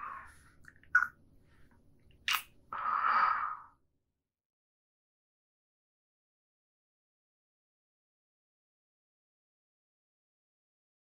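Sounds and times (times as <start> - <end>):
man's lip smack kiss: 2.2 - 2.5
breathy exhale: 2.8 - 3.8.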